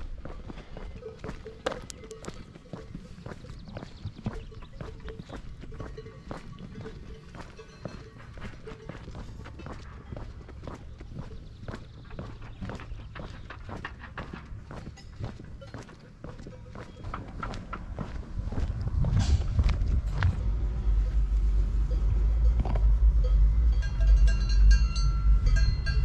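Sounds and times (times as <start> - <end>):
footsteps on pavement: 0.0 - 21.2.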